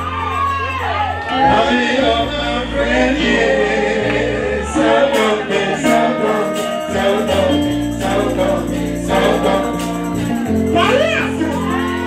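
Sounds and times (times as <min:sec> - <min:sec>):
sustained bass notes: 0:00.8 - 0:12.0
voices singing together: 0:01.2 - 0:12.0.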